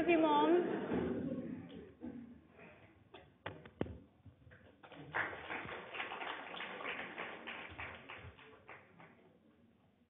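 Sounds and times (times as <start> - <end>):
audience applauding: 4.8 - 9.2.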